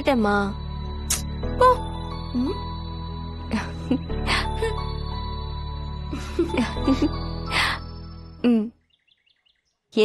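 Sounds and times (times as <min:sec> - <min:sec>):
background music: 0:00.0 - 0:08.8
faint bird chirps: 0:07.5 - 0:10.0.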